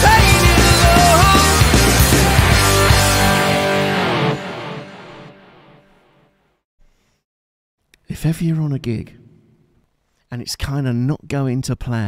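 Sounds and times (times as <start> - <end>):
rock band playing: 0.0 - 5.8
electric guitar chord ringing: 0.0 - 6.0.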